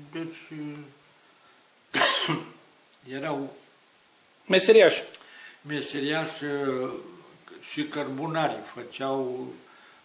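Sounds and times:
man coughing: 1.9 - 2.6.

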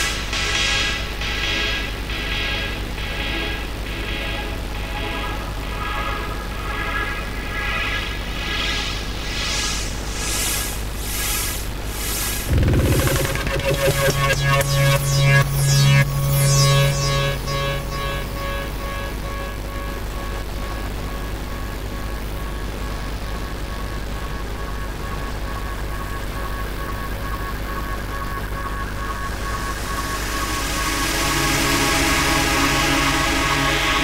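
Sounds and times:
techno kick drum: 0.0 - 4.5, 12.5 - 16.3
hissing riser: 12.5 - 19.0
low bass drone: 12.5 - 21.2, 29.0 - 34.0
pulsing synth note: 12.5 - 21.3, 28.5 - 34.0.

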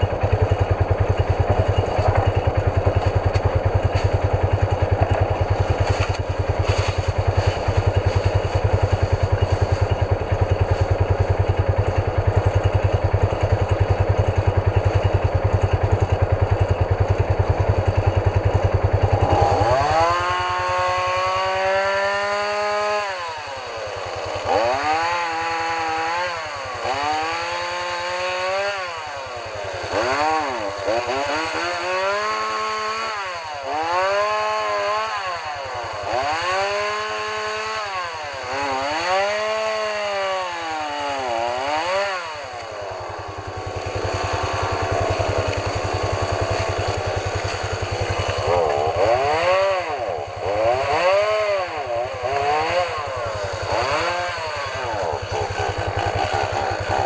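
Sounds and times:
engine idling: 0.0 - 21.7, 41.4 - 57.0
chainsaw revving and cutting: 0.0 - 57.0.

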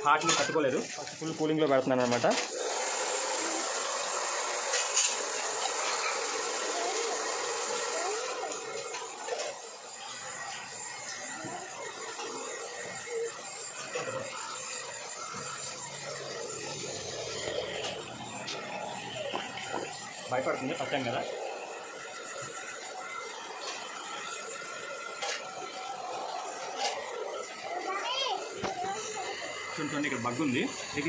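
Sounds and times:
hair dryer blowing: 0.0 - 31.0.

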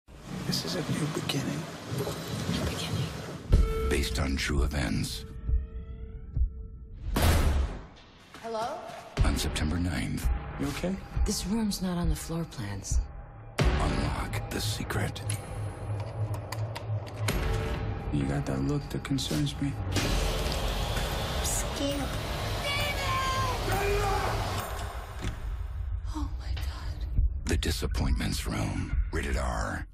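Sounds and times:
low heartbeat-like thumps: 2.2 - 8.0, 9.2 - 15.0, 25.2 - 29.9.

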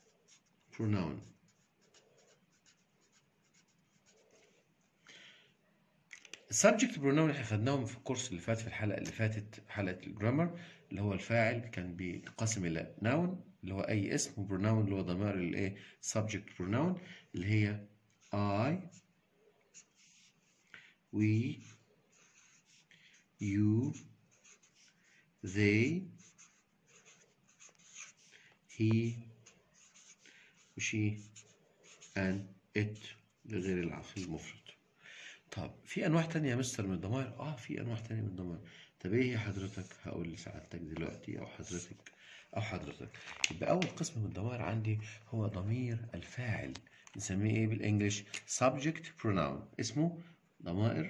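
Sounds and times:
felt-tip pen scratching on paper: 0.0 - 4.6, 18.1 - 19.1, 19.7 - 20.7, 21.4 - 34.7, 39.2 - 41.9.

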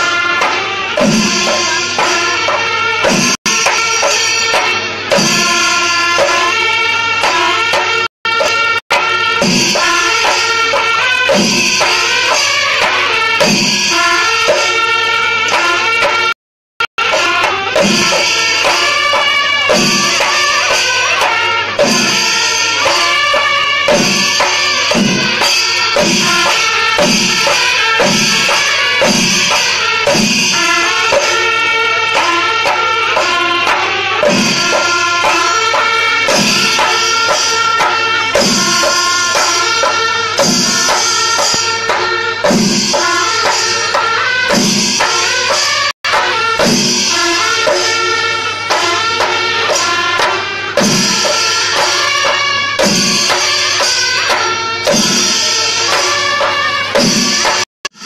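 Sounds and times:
held wind instrument tone: 0.0 - 16.3, 16.9 - 58.0
drums beating steady rhythm: 0.0 - 58.0
buzzing brass horns: 17.0 - 58.0.

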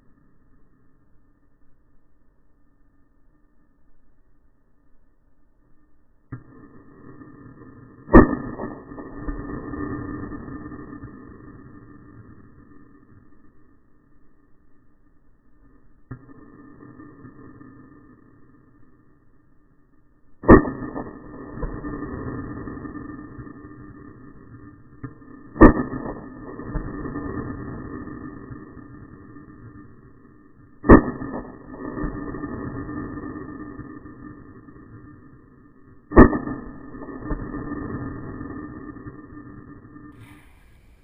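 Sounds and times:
rifle shot: 8.1 - 9.5, 20.4 - 22.0, 25.5 - 26.3, 30.8 - 31.6, 36.1 - 37.8
rifle shot echoing: 40.2 - 41.0.

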